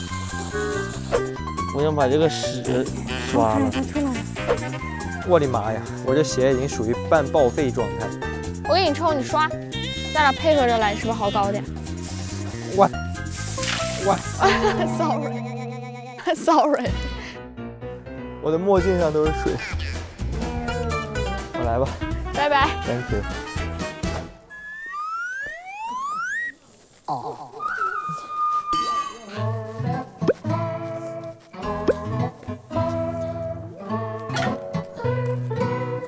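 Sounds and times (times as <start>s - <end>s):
background music: 0.0s - 24.8s, 28.8s - 36.0s
water jet spraying: 11.3s - 15.1s
upbeat plucked-string music: 14.2s - 17.4s, 19.0s - 24.3s
cartoon whistle glides: 24.5s - 26.6s.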